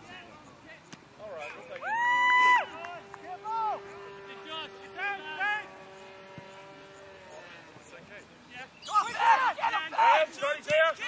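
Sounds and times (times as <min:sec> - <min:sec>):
players shouting calls: 0:00.0 - 0:11.0.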